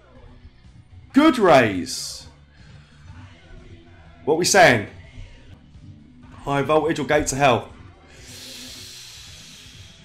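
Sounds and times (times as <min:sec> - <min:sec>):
faint background music: 0:00.0 - 0:10.0
man breathing out: 0:08.1 - 0:10.0.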